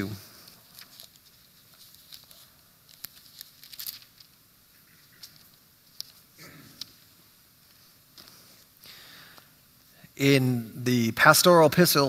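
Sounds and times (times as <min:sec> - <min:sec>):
pages being turned: 0:00.4 - 0:07.0.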